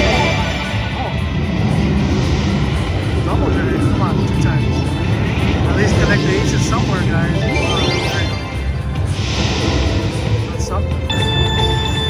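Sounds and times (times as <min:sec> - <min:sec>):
slot machine music and chimes: 0:00.0 - 0:01.2, 0:03.9 - 0:12.0
low rumble: 0:00.0 - 0:11.4
voices: 0:03.2 - 0:08.5.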